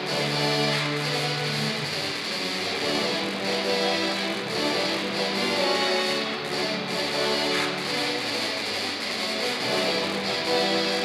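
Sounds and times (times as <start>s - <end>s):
tubas and euphoniums playing: 0.0s - 11.0s.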